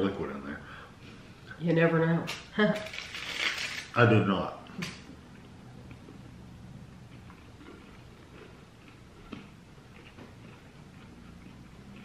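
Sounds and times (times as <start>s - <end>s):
low room hum: 0.0s - 12.0s
faint chewing: 7.0s - 12.0s.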